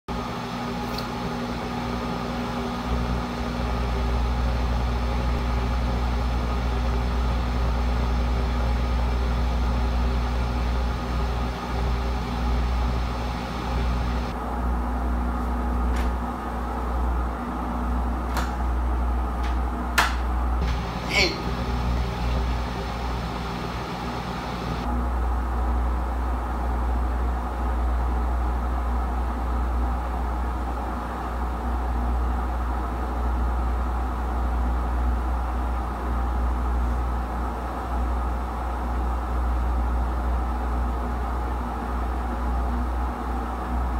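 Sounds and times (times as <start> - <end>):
washing machine spinning: 0.1 - 43.9.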